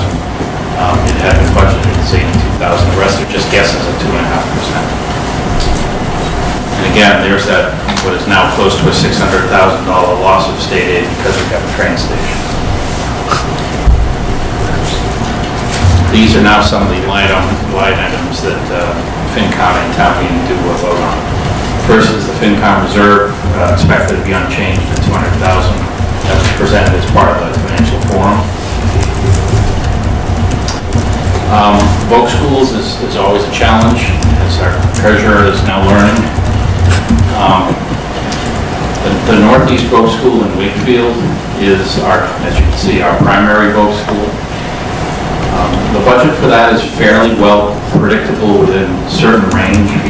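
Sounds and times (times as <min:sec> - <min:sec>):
faint hum: 0:00.0 - 0:50.0
low steady rumble: 0:00.0 - 0:50.0.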